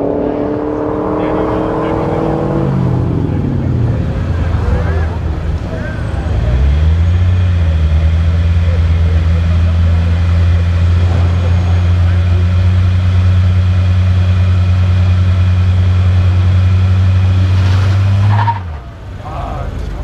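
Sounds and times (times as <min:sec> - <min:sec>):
car engine idling: 0:01.2 - 0:17.4, 0:18.2 - 0:20.0.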